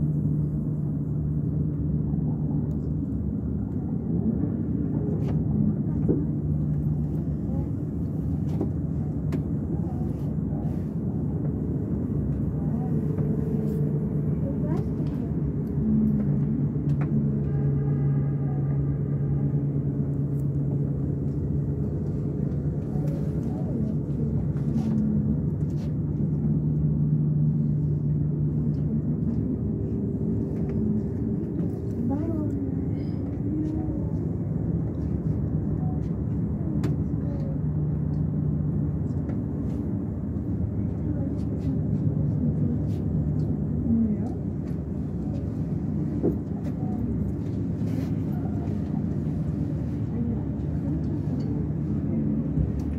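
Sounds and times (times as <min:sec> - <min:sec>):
cable car hum and rumble: 0:00.0 - 0:52.9.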